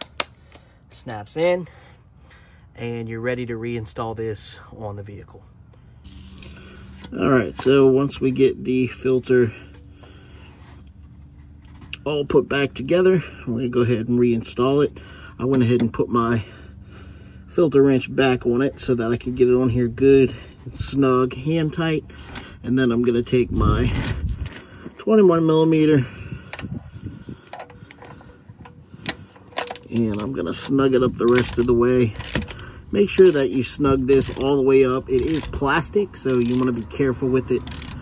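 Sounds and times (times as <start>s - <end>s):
metal socket and ratchet clicks: 27.5s - 38.0s.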